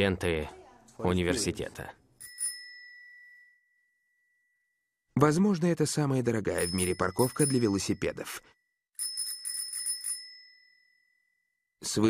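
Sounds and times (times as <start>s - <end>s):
bicycle bell ringing: 2.2s - 4.8s, 6.5s - 11.7s.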